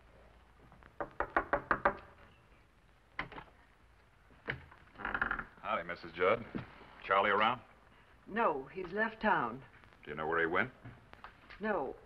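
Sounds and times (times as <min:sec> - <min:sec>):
knocking on wooden door: 0:01.0 - 0:02.2.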